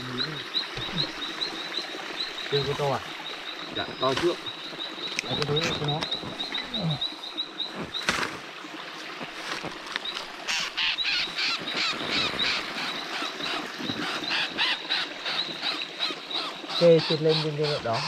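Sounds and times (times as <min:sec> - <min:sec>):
dense cluster of animal calls: 0:10.4 - 0:18.0.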